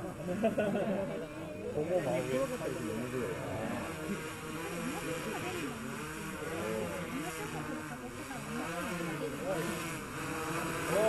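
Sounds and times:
drone propeller hum: 0:00.0 - 0:11.0
murmur of crowd: 0:00.0 - 0:11.0.

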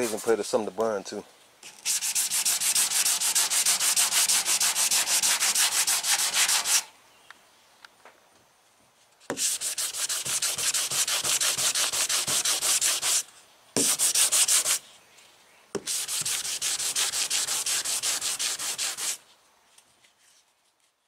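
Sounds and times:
sandpaper scraping painted metal: 0:00.0 - 0:00.6, 0:01.6 - 0:06.9, 0:09.3 - 0:14.9, 0:15.8 - 0:19.2.

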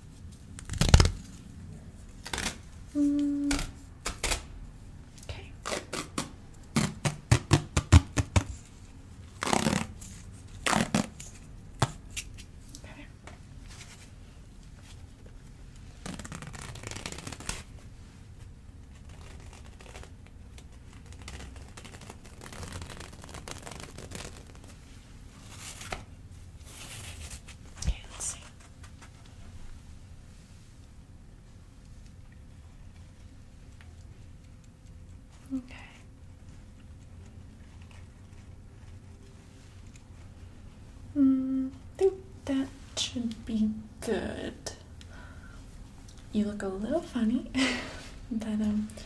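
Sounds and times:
elastic bandage rustling: 0:00.0 - 0:04.6, 0:05.5 - 0:12.7, 0:13.5 - 0:31.0.

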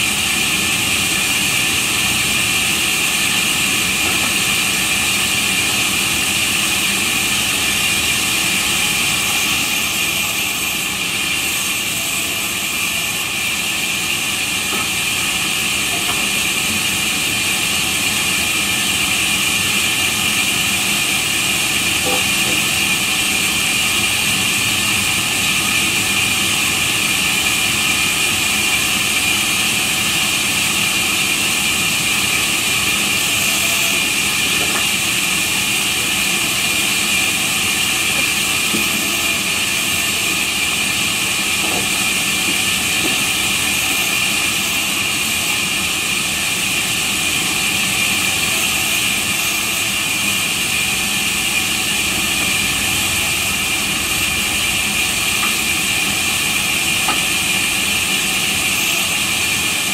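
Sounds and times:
band saw cutting wood: 0:00.0 - 0:59.9
high-pitched saw whine: 0:00.0 - 0:59.9.

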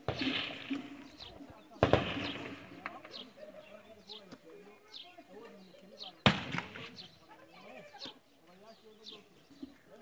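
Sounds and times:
sharp gunshot: 0:00.0 - 0:00.9, 0:01.8 - 0:02.9, 0:06.2 - 0:07.0
voices: 0:00.0 - 0:10.0.

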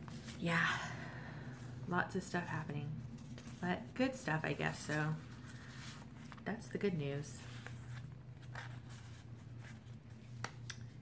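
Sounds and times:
steady low hum: 0:00.0 - 0:11.0
paper pages rustling: 0:03.0 - 0:11.0.

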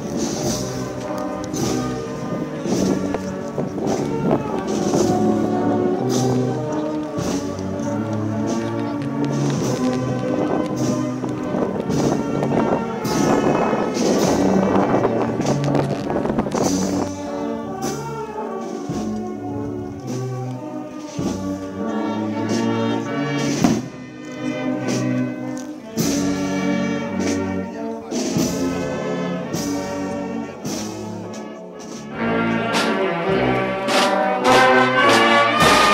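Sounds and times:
brass band playing march: 0:00.0 - 0:35.9.

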